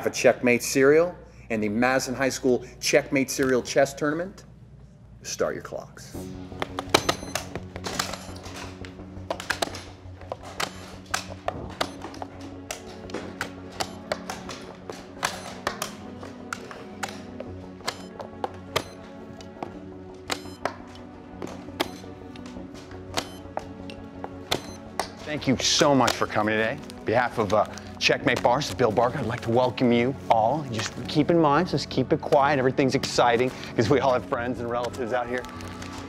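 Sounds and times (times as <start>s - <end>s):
background music: 0.0s - 36.0s
chess clocks pressed: 6.8s - 8.4s, 20.3s - 20.7s, 24.4s - 24.9s.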